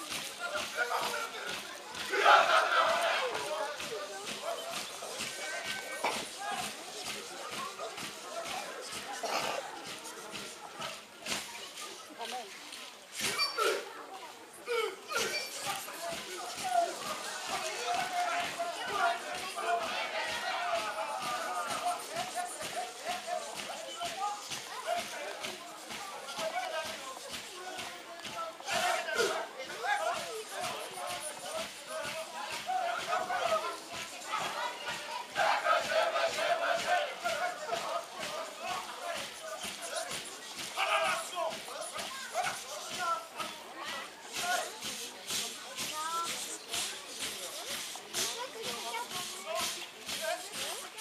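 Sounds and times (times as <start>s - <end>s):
performers shouting and yelping: 0.0s - 11.2s, 13.1s - 51.0s
sharp rhythmic beats: 0.0s - 11.8s, 15.0s - 51.0s
rustling noise: 0.0s - 51.0s
group of voices shouting: 0.8s - 3.8s, 14.7s - 23.6s, 32.4s - 39.4s.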